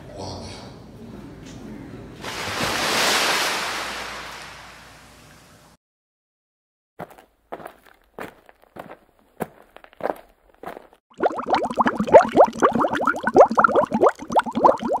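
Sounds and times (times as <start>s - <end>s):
short whooshes: 2.2s - 5.2s.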